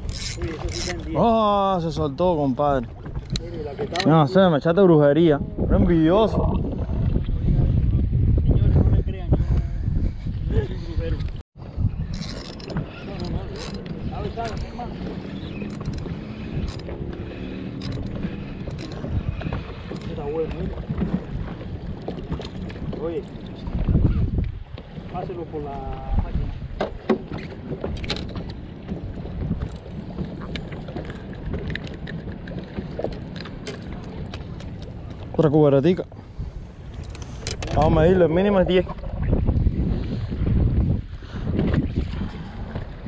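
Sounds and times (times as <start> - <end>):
water lapping against boat: 0.0 - 43.0
wind buffeting microphone: 0.0 - 43.0.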